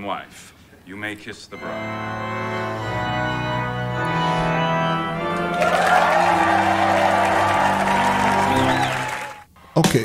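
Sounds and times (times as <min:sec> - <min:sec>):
organ playing held chords: 0:01.6 - 0:09.4
audience applauding and cheering: 0:04.0 - 0:09.5.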